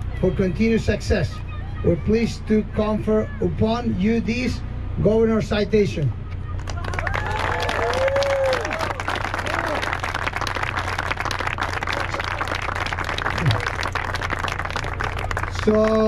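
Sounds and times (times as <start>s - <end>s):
voices calling out: 0.0s - 16.0s
crowd applauding: 6.4s - 16.0s.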